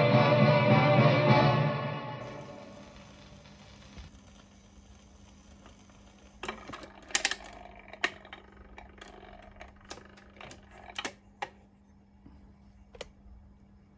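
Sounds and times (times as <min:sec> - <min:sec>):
turntable hum and hiss: 0:02.0 - 0:13.9.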